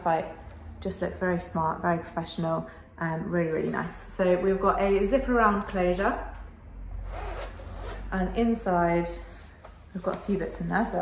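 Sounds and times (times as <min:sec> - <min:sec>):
zipper being unzipped: 0:06.9 - 0:08.2.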